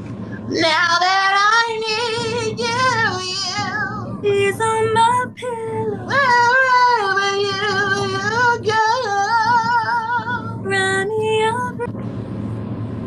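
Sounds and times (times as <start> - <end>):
steady low hum: 0.0 - 13.0
woman singing a slow ballad: 0.4 - 11.9.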